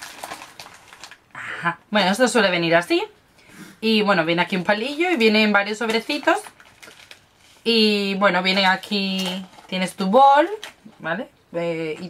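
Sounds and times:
plastic packaging crinkling: 0.0 - 1.3, 5.8 - 11.0
woman speaking: 1.6 - 3.2, 3.8 - 6.6, 7.6 - 12.0.

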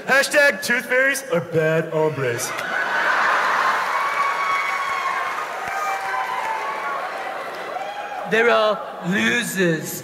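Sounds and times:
large audience laughing: 2.6 - 4.0.

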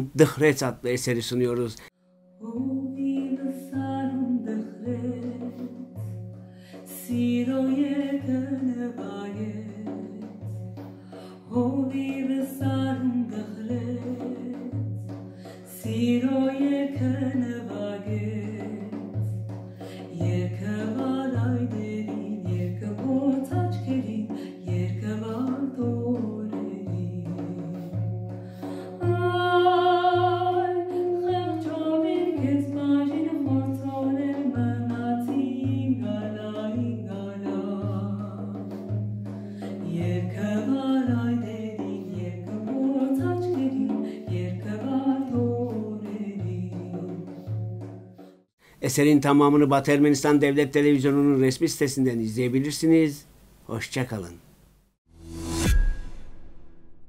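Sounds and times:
woman singing folk song: 2.4 - 48.0
frame drum beat: 3.2 - 52.2.

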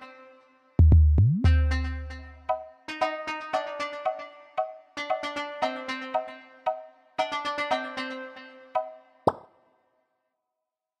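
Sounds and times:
electronic plucked notes: 0.8 - 9.4.

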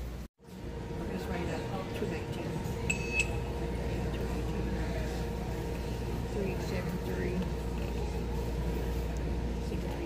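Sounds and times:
store background hum: 0.0 - 10.0
barcode scanner beeps: 2.9 - 3.4.

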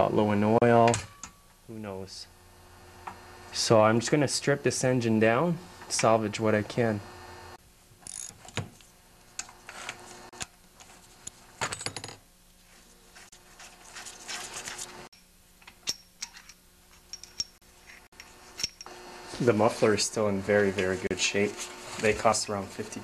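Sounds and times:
rustling: 12.5 - 15.1
light metallic clicks and clinks: 15.7 - 17.6.

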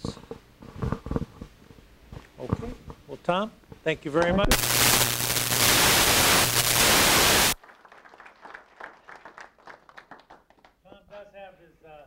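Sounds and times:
audience applauding: 6.6 - 10.8
faint scattered claps: 7.6 - 11.1.

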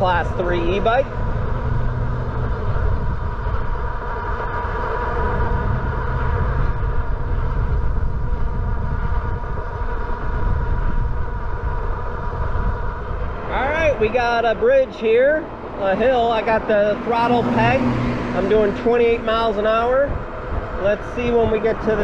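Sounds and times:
wind rushing over microphone: 0.0 - 22.0.

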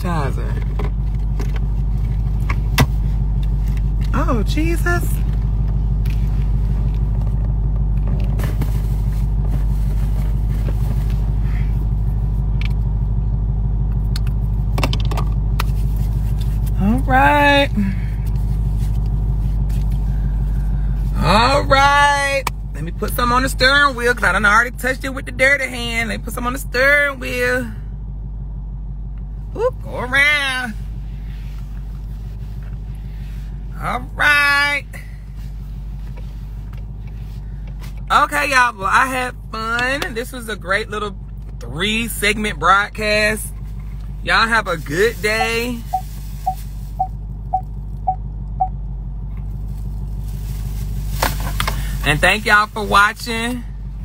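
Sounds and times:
car engine idling: 0.0 - 54.0.

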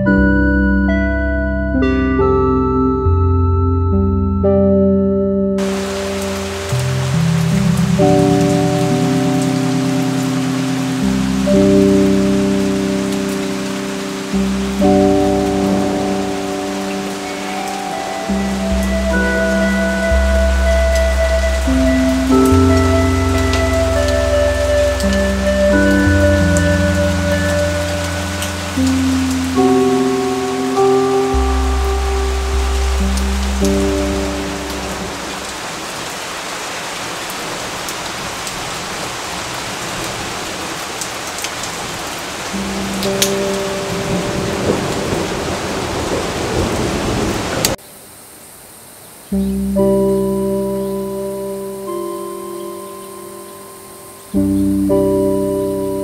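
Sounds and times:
slow music with held chords: 0.0 - 36.2, 41.4 - 47.3, 49.3 - 56.0
steady rain falling: 5.6 - 56.0.

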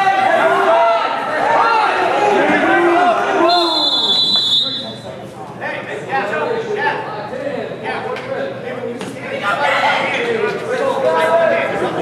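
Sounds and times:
referee's whistle: 3.4 - 5.0.

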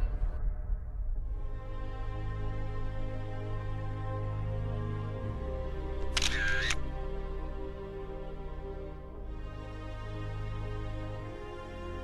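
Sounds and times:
soft background music: 0.0 - 12.0
camera shutter: 6.0 - 6.8.

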